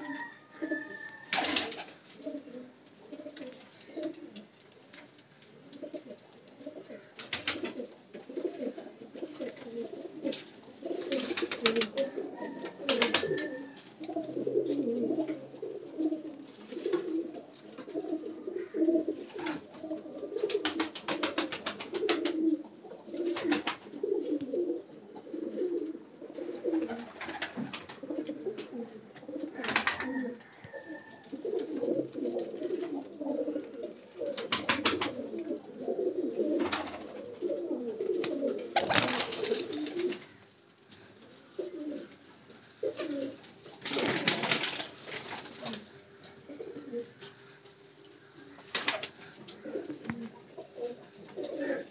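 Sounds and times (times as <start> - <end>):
pigeons cooing: 0.0 - 4.6, 5.6 - 51.9.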